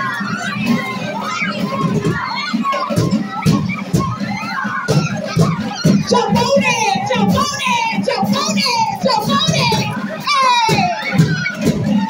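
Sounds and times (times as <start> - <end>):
children shouting and cheering: 0.0 - 12.0
music with drums: 0.0 - 12.0.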